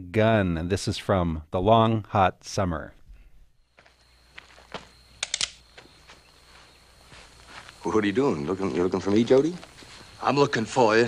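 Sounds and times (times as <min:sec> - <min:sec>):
low film hiss: 0:00.0 - 0:11.0
sharp clicks: 0:05.2 - 0:05.6.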